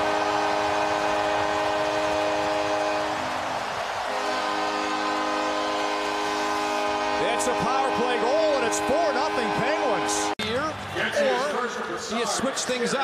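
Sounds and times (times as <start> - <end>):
goal horn blasting a chord: 0.0 - 3.3, 4.1 - 10.4
crowd cheering: 0.0 - 13.0.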